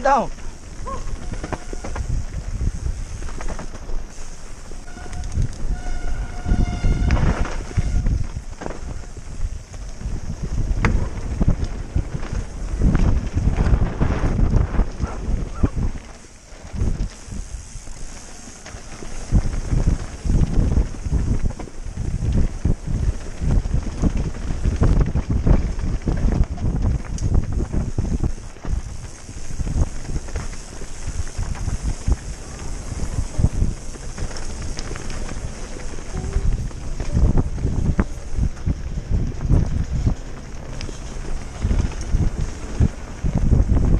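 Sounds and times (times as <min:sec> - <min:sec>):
bike rattling on rough trail: 0:00.0 - 0:43.9
wind buffeting microphone: 0:00.0 - 0:43.9.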